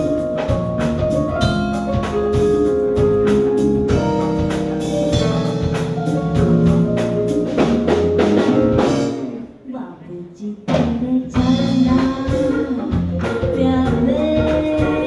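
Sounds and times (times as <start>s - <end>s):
live band playing: 0.0s - 15.0s
woman singing: 9.7s - 15.0s.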